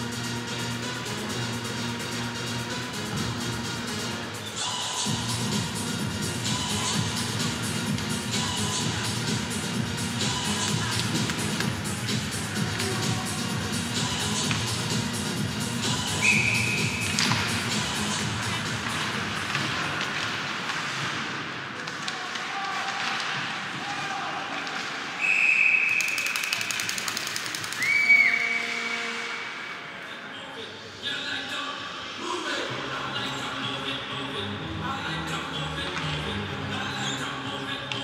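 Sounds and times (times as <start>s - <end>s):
arena music: 0.0s - 20.6s, 32.0s - 38.0s
referee's whistle blasts: 16.2s - 17.0s, 25.2s - 26.6s, 27.8s - 29.6s
skates and sticks on ice: 16.6s - 25.4s.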